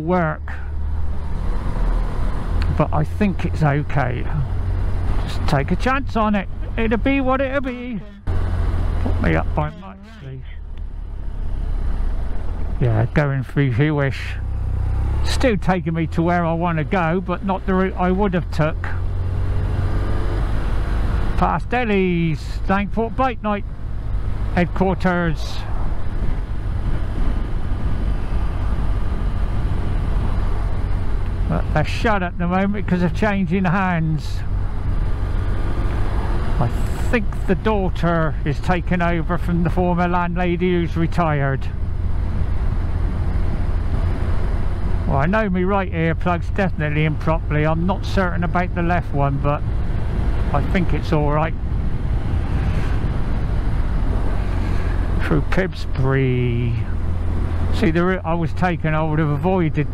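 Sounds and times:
motorcycle engine drone: 0.0 - 59.9
road rumble: 0.0 - 59.9
wind: 0.0 - 59.9.

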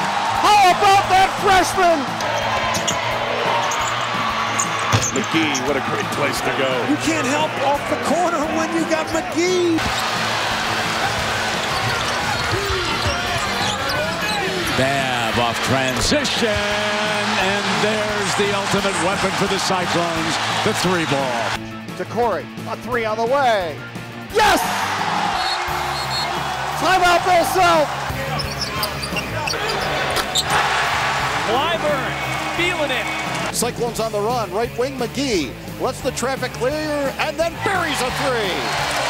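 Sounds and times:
arena crowd noise: 0.0 - 22.9, 23.5 - 39.0
backing music: 0.0 - 39.0
sneaker squeaks on hardwood floor: 3.6 - 5.3, 11.6 - 14.8, 28.2 - 30.5.

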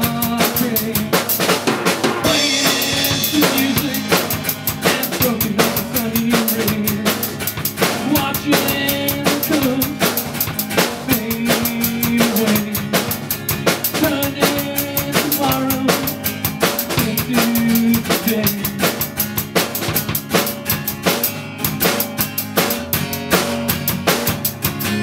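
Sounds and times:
amplified acoustic guitar: 0.0 - 25.0
drum kit beat: 0.0 - 25.0.

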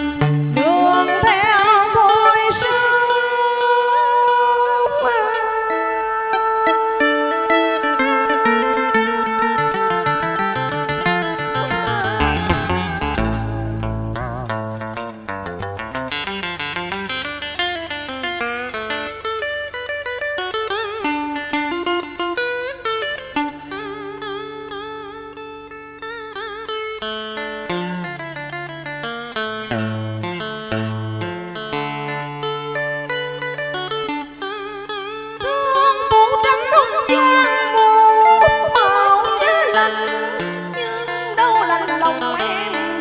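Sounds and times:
electric guitar melody: 0.0 - 43.0
woman singing: 0.1 - 14.2, 35.4 - 43.0.

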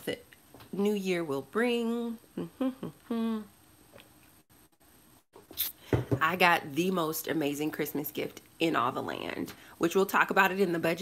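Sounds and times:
woman speaking: 0.8 - 3.0, 6.2 - 11.0
short vocal sounds: 2.3 - 3.6
woman humming: 2.3 - 3.6.

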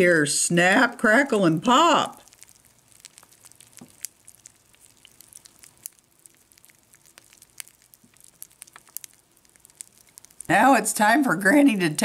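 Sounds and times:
cereal crackling in milk: 0.8 - 12.0.

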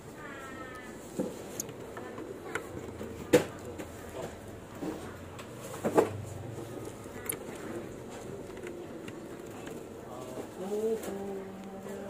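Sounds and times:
faint steady hum: 0.0 - 12.0
handling noise with clicks: 0.7 - 12.0.

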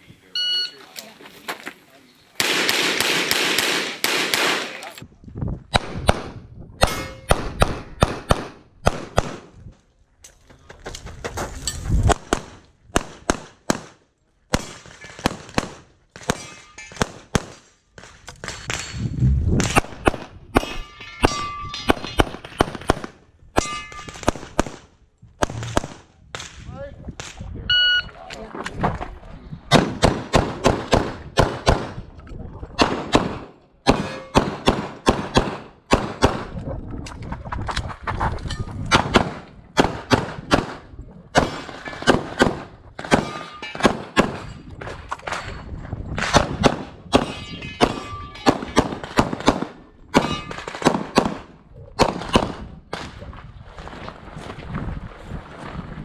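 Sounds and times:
pistol shots: 2.4 - 4.9, 32.8 - 36.5, 41.4 - 44.5, 46.2 - 53.1.

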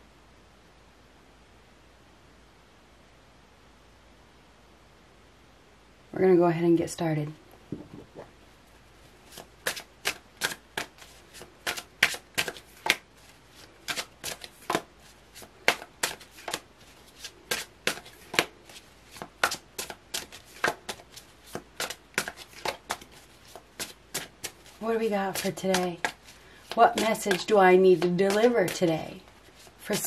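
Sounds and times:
cards being shuffled: 9.2 - 30.0.

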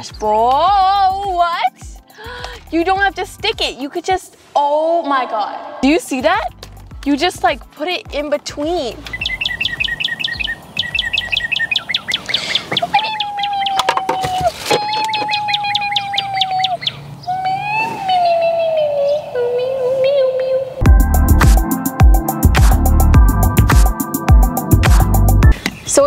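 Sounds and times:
bird chirping and whistling: 9.0 - 19.4.

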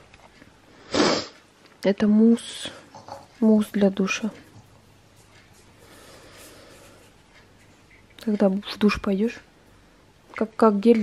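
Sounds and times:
person sniffing: 0.8 - 1.4.

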